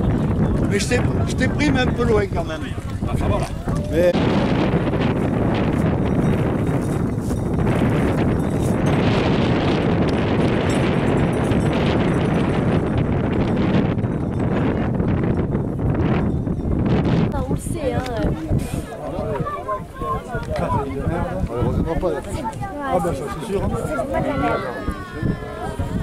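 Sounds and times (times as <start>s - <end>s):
herd of bulls running: 0.0s - 26.0s
wind buffeting microphone: 0.0s - 26.0s.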